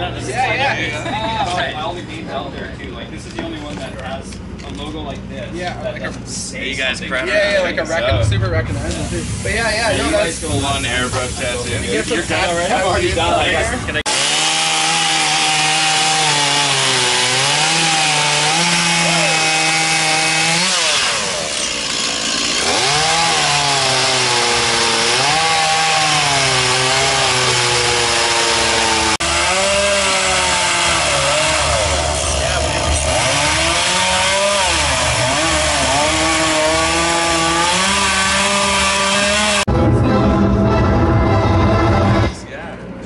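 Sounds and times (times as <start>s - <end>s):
voices: 0.0s - 14.1s, 30.9s - 33.7s
chainsaw cutting wood: 14.0s - 39.7s
music: 39.7s - 42.4s.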